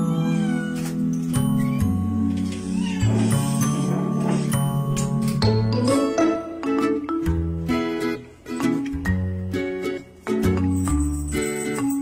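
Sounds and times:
puppy whining: 0:00.0 - 0:04.6.

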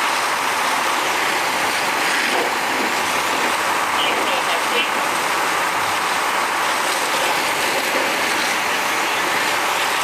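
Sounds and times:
fire engine pump running: 0:00.0 - 0:10.0
fire hose spraying: 0:00.0 - 0:10.0.

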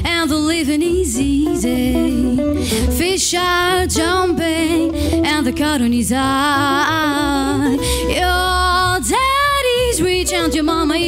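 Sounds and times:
woman singing jazz: 0:00.0 - 0:11.0.

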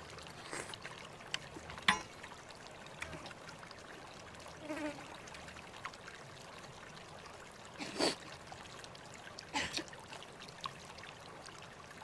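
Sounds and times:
faint insect buzzing: 0:04.6 - 0:05.2.

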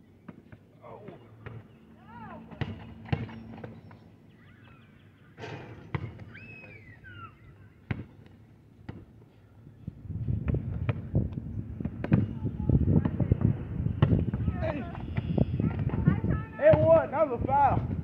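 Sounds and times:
basketball bouncing on asphalt: 0:00.2 - 0:01.8, 0:02.5 - 0:04.0, 0:05.9 - 0:06.4, 0:07.8 - 0:09.2, 0:10.4 - 0:17.1
wind rumbling on microphone: 0:09.7 - 0:18.0.

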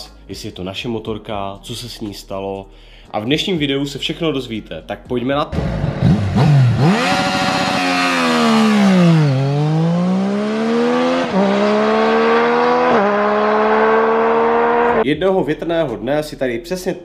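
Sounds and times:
motorcycle engine accelerating: 0:05.5 - 0:15.0.

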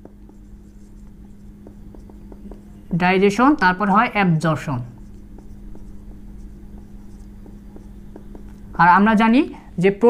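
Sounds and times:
marker scratching on whiteboard: 0:00.0 - 0:09.2
steady low hum: 0:00.0 - 0:10.0.

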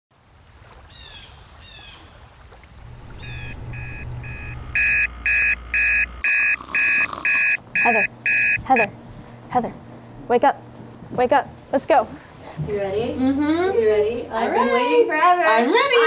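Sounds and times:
alarm beeping: 0:02.9 - 0:09.0.

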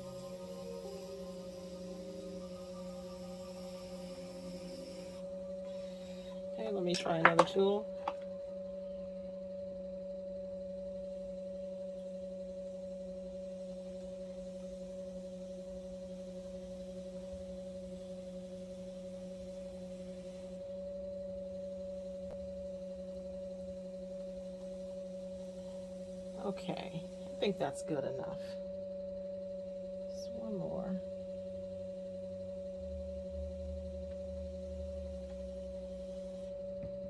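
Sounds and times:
potter's wheel motor humming: 0:00.0 - 0:37.0.

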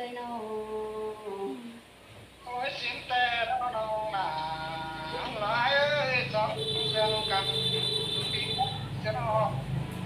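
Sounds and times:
woman singing a long note: 0:00.0 - 0:01.8.

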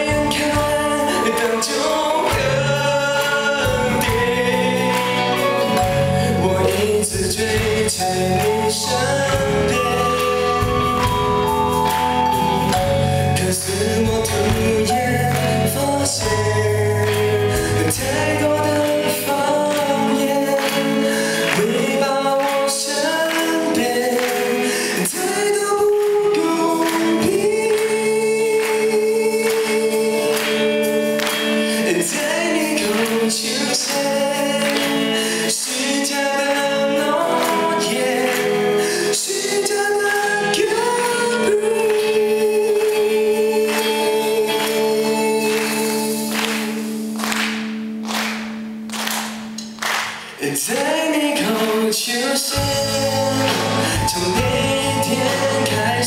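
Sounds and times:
man singing lead vocal: 0:00.0 - 0:47.2, 0:50.1 - 0:56.0
live rock band playing: 0:00.0 - 0:56.0.

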